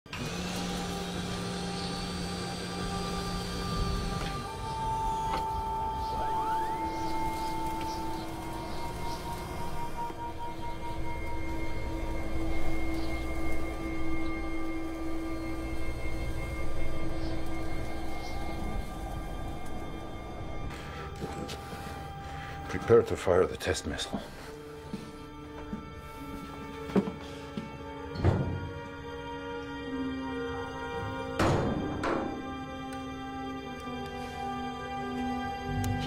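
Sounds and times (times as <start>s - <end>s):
ominous film score music: 0.1s - 36.0s.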